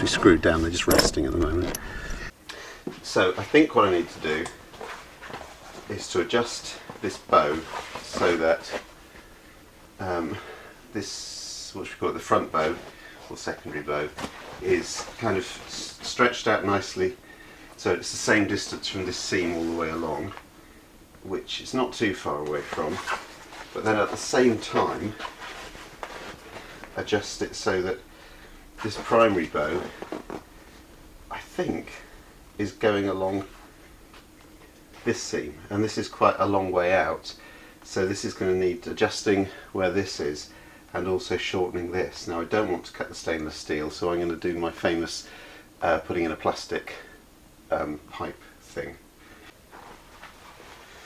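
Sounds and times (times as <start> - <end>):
canvas fabric rustling: 22.3 - 27.0, 49.7 - 51.0.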